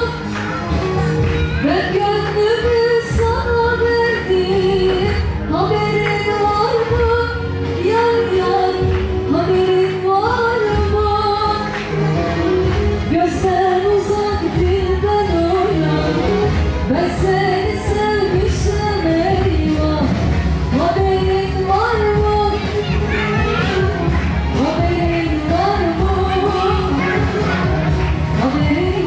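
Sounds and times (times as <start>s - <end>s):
backing track with steady beat: 0.0s - 29.0s
woman singing into microphone: 0.0s - 29.0s.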